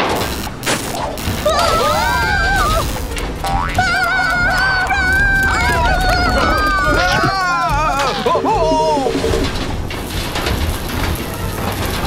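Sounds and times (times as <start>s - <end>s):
dense noisy sound effect: 0.0s - 12.0s
wavering cry: 1.4s - 3.0s, 3.7s - 9.4s.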